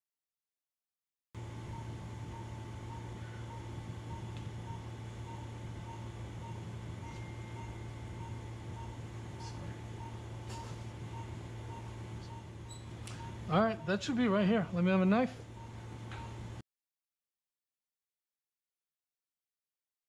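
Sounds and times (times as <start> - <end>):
electronic monitor beeping: 1.4 - 16.6
steady low hum: 1.4 - 16.6.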